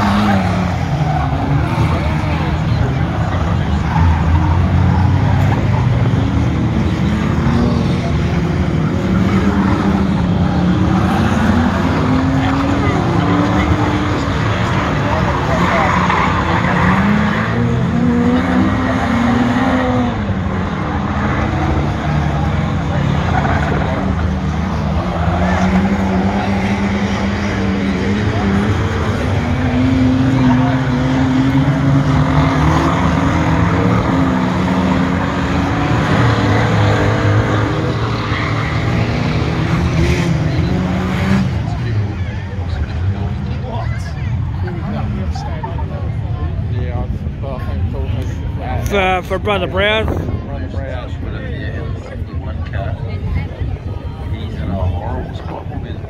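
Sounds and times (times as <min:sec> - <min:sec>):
race car engines revving: 0:00.0 - 0:56.0.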